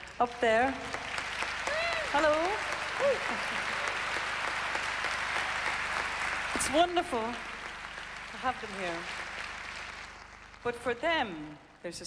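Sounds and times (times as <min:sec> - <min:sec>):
audience applauding: 0:00.0 - 0:10.9.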